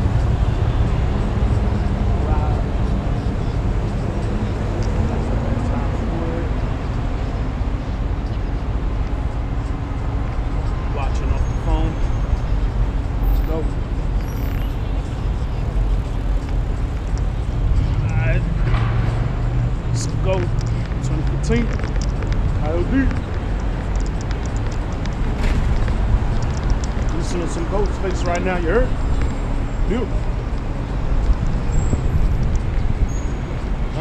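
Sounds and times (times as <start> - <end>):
voices: 0.0 - 18.5, 19.9 - 25.1, 25.9 - 31.4
low traffic rumble: 0.0 - 34.0.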